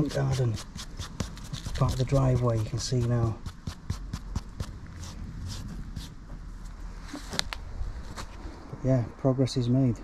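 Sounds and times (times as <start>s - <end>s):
scuffs and rustles over soil: 4.9s - 8.8s.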